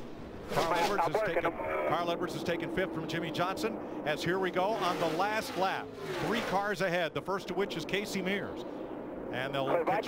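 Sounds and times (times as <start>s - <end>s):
distant drone of race cars: 0.0s - 10.0s
man commentating a race: 0.4s - 10.0s.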